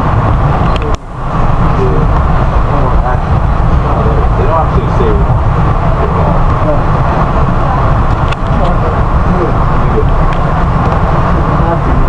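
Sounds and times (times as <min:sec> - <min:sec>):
train car rumbling: 0:00.0 - 0:12.0.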